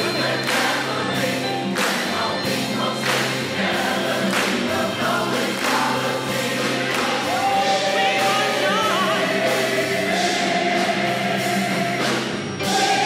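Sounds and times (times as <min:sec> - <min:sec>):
gospel choir singing: 0:00.0 - 0:13.0
instrumental backing with steady beat: 0:00.0 - 0:13.0.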